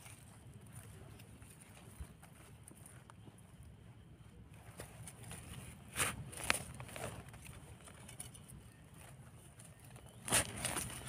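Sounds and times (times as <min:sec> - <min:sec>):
hand rustling leaves and soil: 0:03.9 - 0:11.0.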